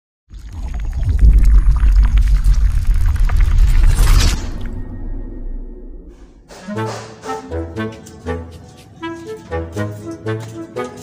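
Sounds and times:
scattered crackles: 0.3s - 4.9s
deep loud rumbling: 0.5s - 6.5s.

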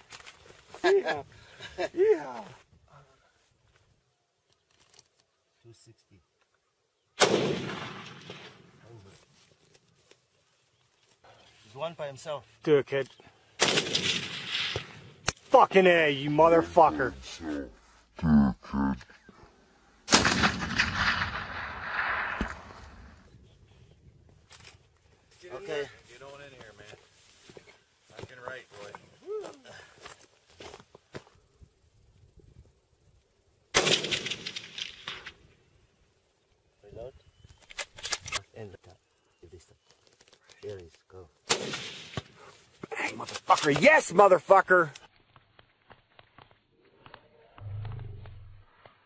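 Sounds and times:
rifle shot echo: 7.2s - 8.8s, 13.6s - 15.3s, 20.0s - 23.2s, 33.7s - 35.4s, 41.5s - 42.4s.

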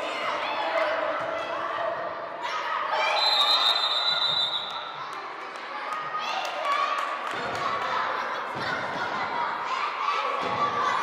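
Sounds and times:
echoing gym noise: 0.0s - 11.0s
referee's whistle long blast: 3.1s - 4.8s.

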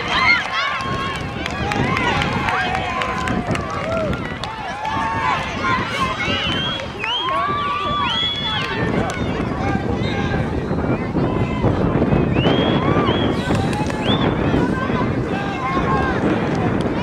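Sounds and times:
girls and spectators shouting: 0.0s - 11.8s, 14.3s - 16.3s.

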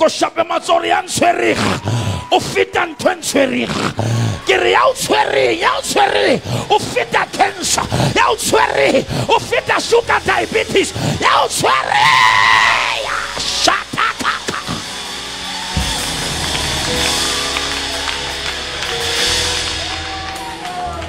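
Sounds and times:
preacher shouting: 0.0s - 21.0s
congregation shouting: 0.6s - 21.0s
keyboard and bass chords: 3.7s - 21.0s
congregation clapping: 14.2s - 21.0s.

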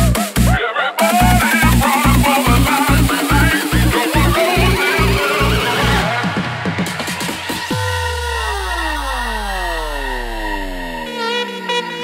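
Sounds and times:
synth tones gliding downward: 0.9s - 12.0s
deep bass note: 1.2s - 6.6s, 7.7s - 11.5s.

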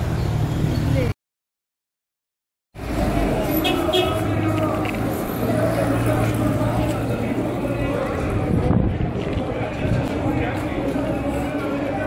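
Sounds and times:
passers-by talking: 2.8s - 12.0s.

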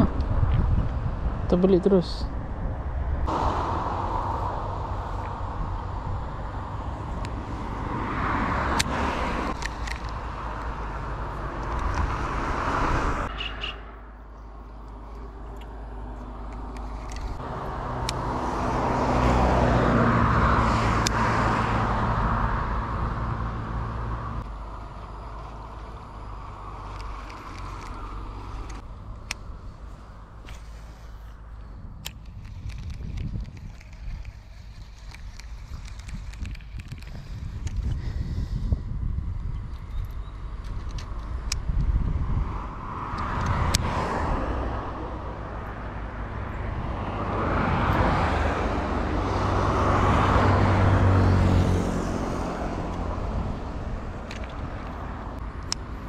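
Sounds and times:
vehicle engine hum: 0.0s - 56.0s
vehicles passing close by: 0.0s - 56.0s.

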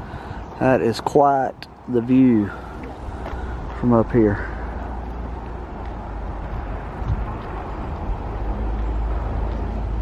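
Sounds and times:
wind rumbling on microphone: 1.5s - 10.0s.

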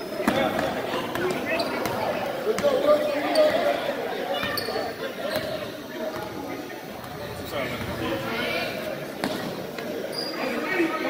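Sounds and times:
basketball bouncing on gym floor: 0.2s - 2.8s, 9.2s - 9.5s.

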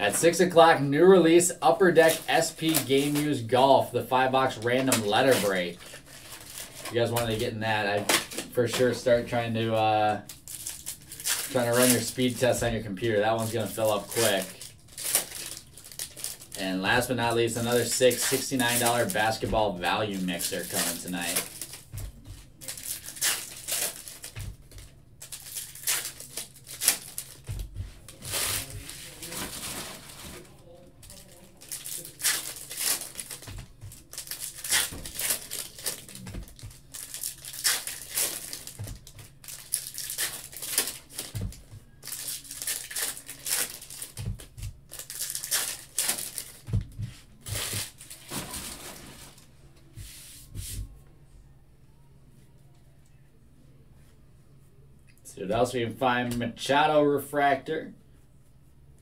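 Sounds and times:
foil wrappers crinkling and tearing: 0.2s - 46.8s, 47.4s - 49.5s
cards being handled: 1.9s - 3.4s, 4.3s - 9.0s, 9.7s - 30.5s.

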